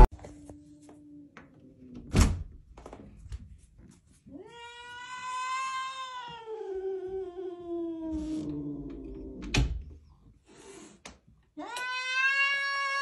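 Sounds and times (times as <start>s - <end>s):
cat meowing: 11.6s - 13.0s.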